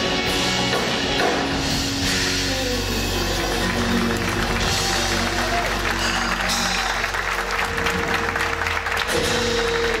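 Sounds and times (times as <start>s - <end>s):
live band held note: 0.0s - 10.0s
audience applauding: 2.8s - 10.0s.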